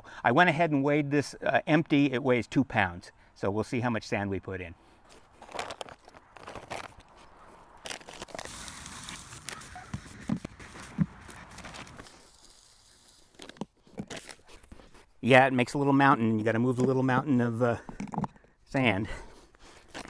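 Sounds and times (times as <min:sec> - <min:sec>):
footsteps crunching on mulch: 0:05.0 - 0:15.2
sand pouring through funnel: 0:07.9 - 0:14.3.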